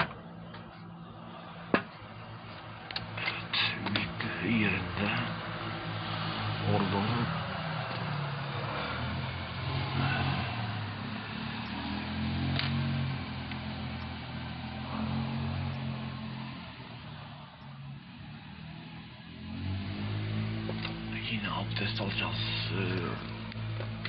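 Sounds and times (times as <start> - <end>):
engine hum with hiss: 0.2 - 24.0.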